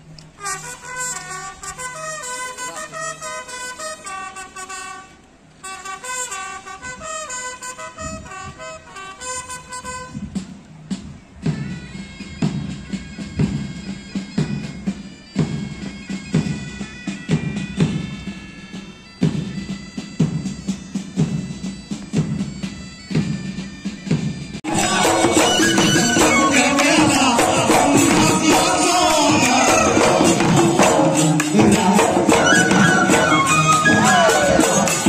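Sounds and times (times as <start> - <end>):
wind instrument melody: 0.0 - 35.0
band with steady drum beats: 7.6 - 35.0.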